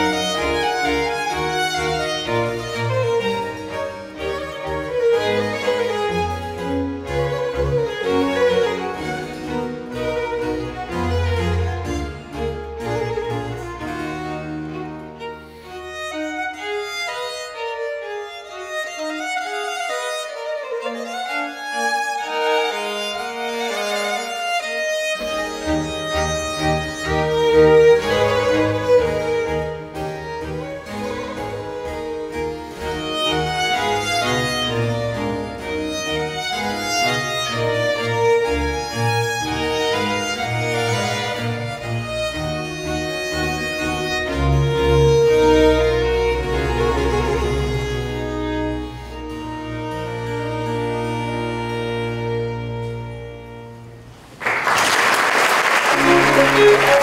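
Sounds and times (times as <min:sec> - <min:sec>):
bass string instruments: 0:00.0 - 0:54.5, 0:55.8 - 0:57.0
violins playing: 0:00.0 - 0:54.5, 0:55.6 - 0:57.0.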